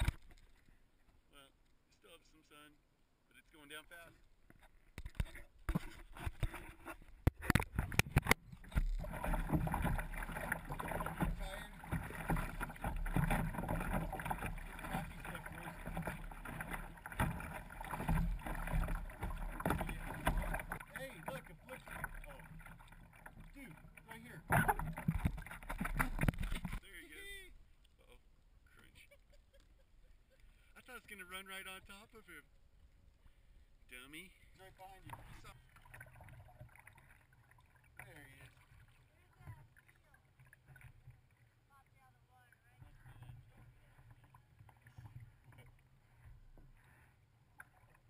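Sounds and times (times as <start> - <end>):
muffled water splashing: 3.9 - 48.0.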